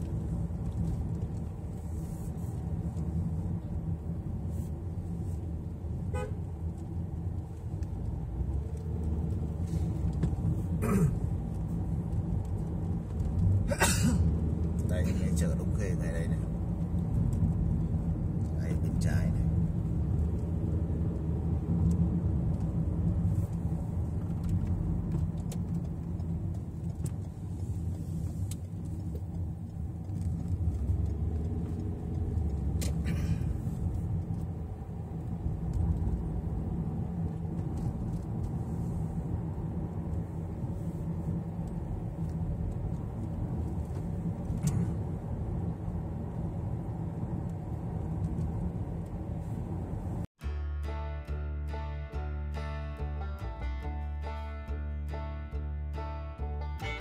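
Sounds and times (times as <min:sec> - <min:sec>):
car engine and tyre rumble: 0:00.0 - 0:57.0
short sharp high sounds: 0:56.7 - 0:57.0.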